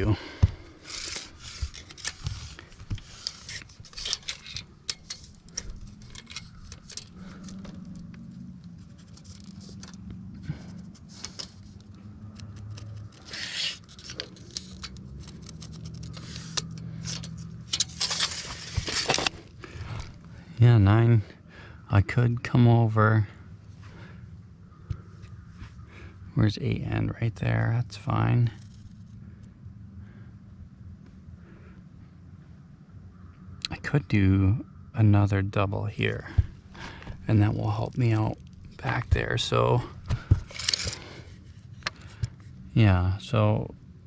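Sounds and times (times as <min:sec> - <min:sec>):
rustling and scraping on membrane: 0:00.6 - 0:19.5, 0:36.3 - 0:42.5.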